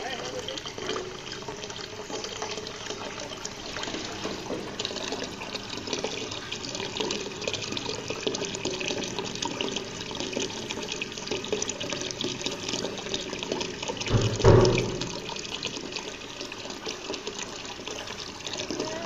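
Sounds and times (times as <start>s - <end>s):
water splashing into pond: 13.8s - 16.0s.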